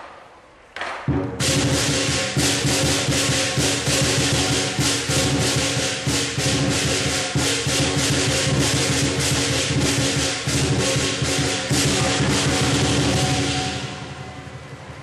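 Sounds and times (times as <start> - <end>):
big drum: 1.0 - 15.0
cymbals crashing: 1.1 - 15.0
ringing gong: 1.4 - 15.0.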